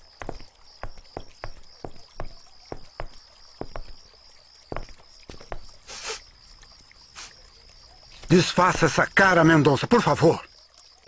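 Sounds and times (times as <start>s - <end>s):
footsteps on hard ground: 0.0s - 6.1s
crickets chirping: 0.0s - 11.0s.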